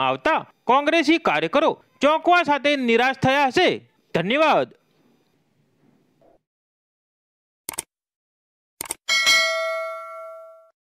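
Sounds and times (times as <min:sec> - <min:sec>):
bell ding: 0:09.1 - 0:10.8.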